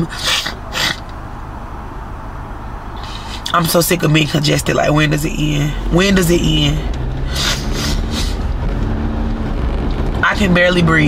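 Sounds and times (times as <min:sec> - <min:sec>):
car road noise rumble: 0:00.0 - 0:11.0
sniffs through congested nose: 0:03.0 - 0:03.4, 0:07.3 - 0:08.4.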